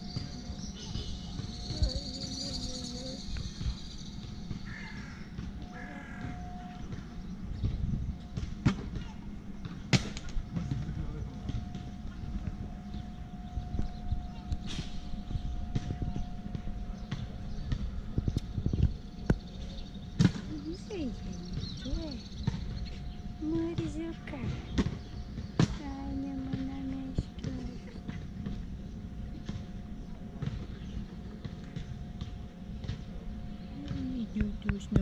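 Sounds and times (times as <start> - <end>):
distant voices: 0.0 - 35.0
steady low hum: 0.0 - 35.0.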